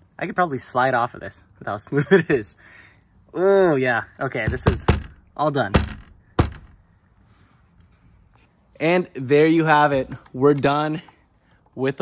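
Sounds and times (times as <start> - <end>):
hand patting car bumper: 4.4 - 6.8.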